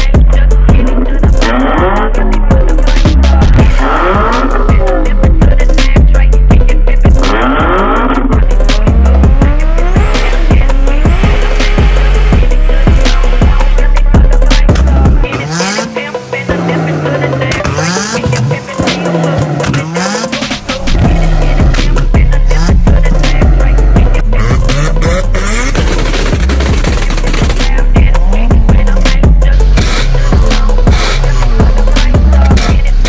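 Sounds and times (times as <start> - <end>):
bass-heavy music: 0.0 - 33.0
car engine revving: 0.0 - 33.0.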